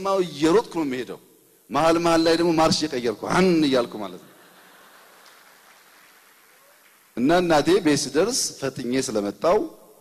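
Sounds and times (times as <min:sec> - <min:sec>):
low even hiss: 0:00.0 - 0:10.0.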